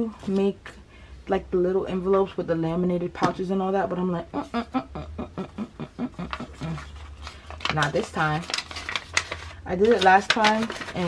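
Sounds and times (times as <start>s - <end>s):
paper envelope crackling: 6.3s - 11.0s.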